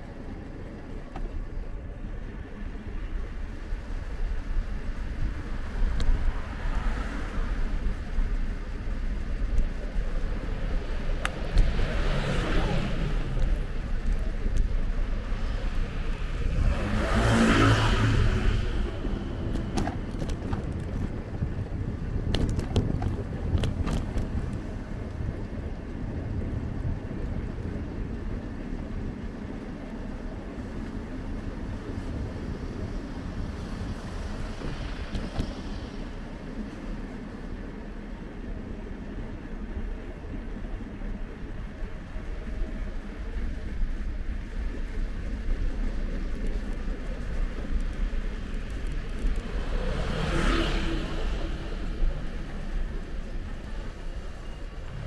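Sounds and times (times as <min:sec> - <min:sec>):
wind and road noise: 0:00.0 - 0:55.0
motor scooter passing: 0:11.4 - 0:21.2, 0:43.2 - 0:55.0.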